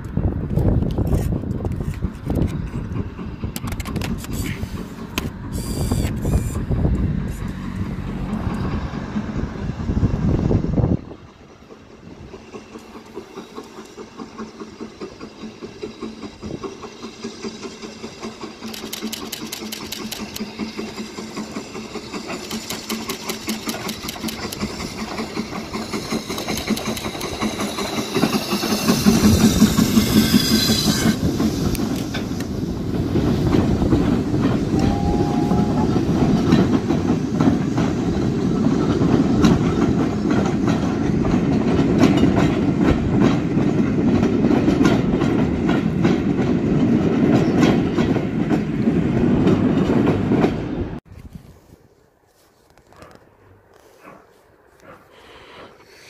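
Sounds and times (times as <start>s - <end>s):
wheels clacking over rail joints: 0.0s - 10.0s, 11.0s - 51.0s
steam locomotive exhaust chuffs: 0.1s - 51.0s.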